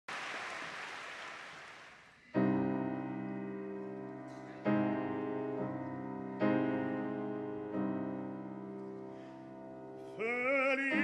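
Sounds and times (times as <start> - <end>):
audience applauding: 0.0 - 2.3.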